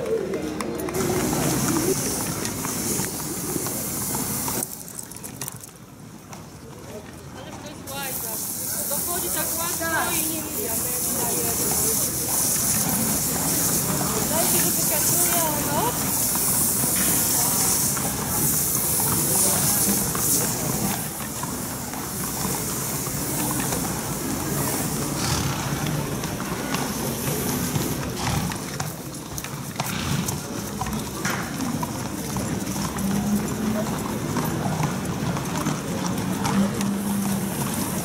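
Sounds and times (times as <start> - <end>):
horse hooves clip-clopping: 0.0 - 38.0
hose water spraying: 1.0 - 5.3, 7.9 - 28.9.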